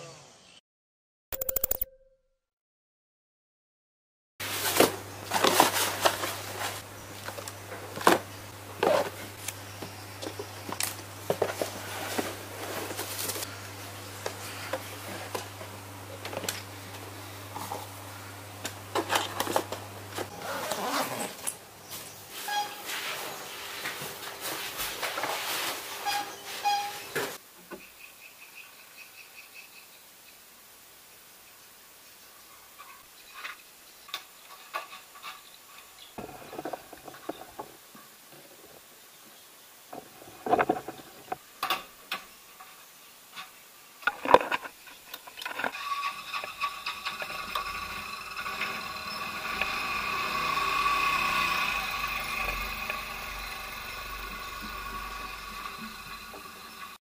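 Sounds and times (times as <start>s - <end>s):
short high squeaks: 22.3s - 23.4s, 26.0s - 27.2s
faint insect chirping: 27.7s - 34.4s
small scooter engine running: 45.7s - 57.0s.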